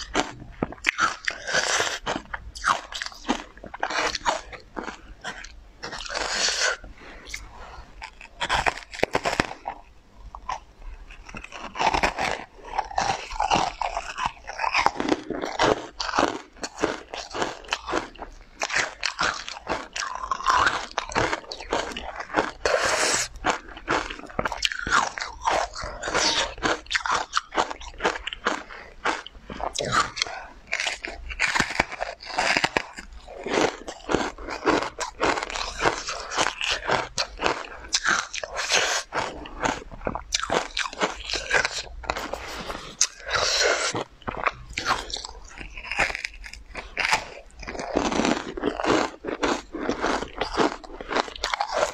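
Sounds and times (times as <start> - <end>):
mouth biting and chewing: 0.0 - 51.9.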